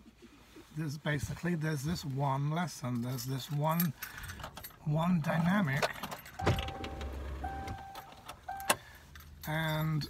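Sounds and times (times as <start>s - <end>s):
vehicle low rumble: 5.9s - 10.0s.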